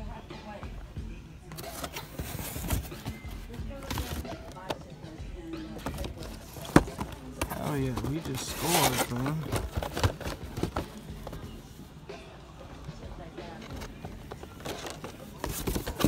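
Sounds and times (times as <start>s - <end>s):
cardboard boxes rustling and knocking: 1.5s - 4.8s, 5.7s - 11.7s, 13.5s - 16.0s.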